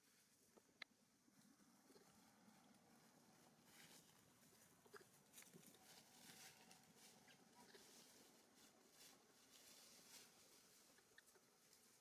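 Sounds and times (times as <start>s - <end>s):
dry leaves crackling: 5.3s - 12.0s.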